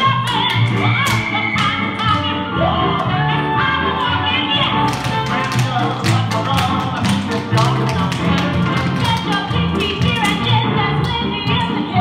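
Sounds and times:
loud recorded music: 0.0s - 12.0s.

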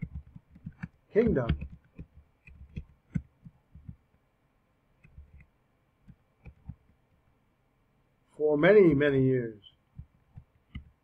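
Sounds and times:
keyboard typing: 0.0s - 4.2s, 5.0s - 7.0s, 9.9s - 11.0s.

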